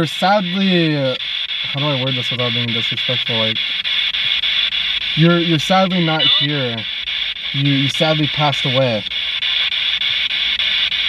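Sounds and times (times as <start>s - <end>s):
radio static hiss: 0.0s - 11.0s.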